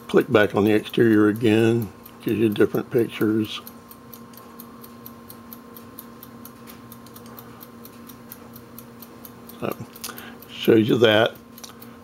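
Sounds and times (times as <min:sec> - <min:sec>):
faint electrical hum: 0:00.0 - 0:12.0
rapid light ticking: 0:00.0 - 0:12.0.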